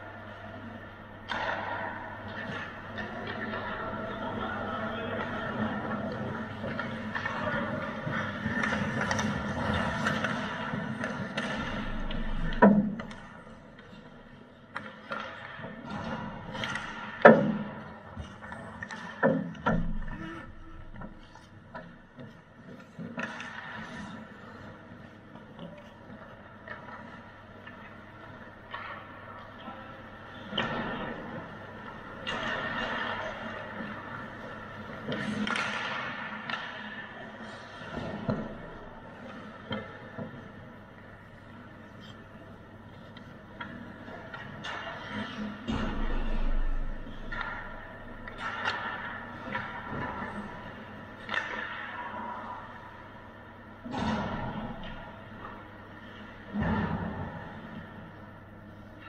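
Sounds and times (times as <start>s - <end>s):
puck and sticks cracking: 1.2s - 20.2s, 20.9s - 58.0s.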